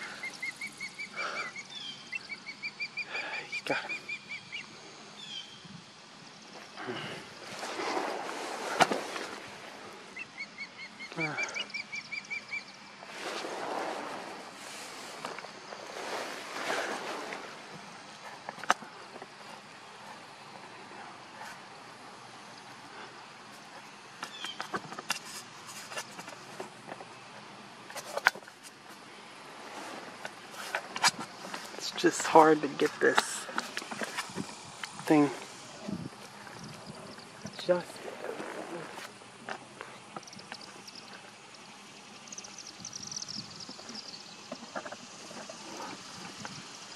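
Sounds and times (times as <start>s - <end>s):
osprey chirping calls: 0.0s - 5.6s, 10.1s - 13.3s
rustling swells: 6.4s - 10.2s, 12.9s - 40.8s.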